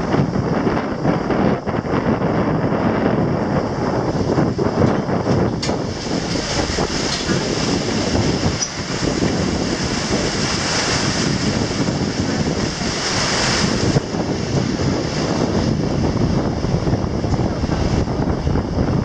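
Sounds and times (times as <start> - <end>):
river water splashing against hull: 0.0 - 19.0
wind buffeting microphone: 0.0 - 19.0.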